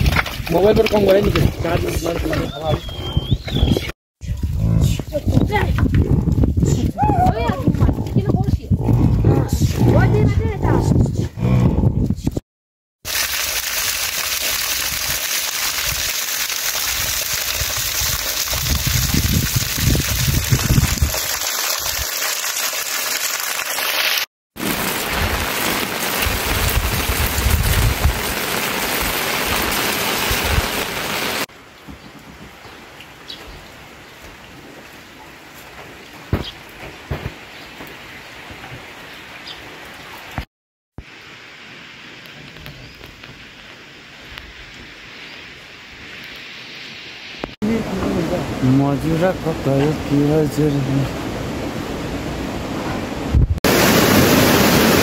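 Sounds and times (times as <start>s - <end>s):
heavy rain falling: 13.1s - 31.5s, 53.6s - 55.0s.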